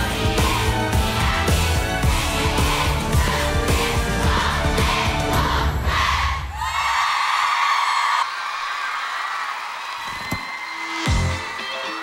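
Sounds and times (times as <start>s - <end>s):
studio audience cheering: 6.5s - 12.0s.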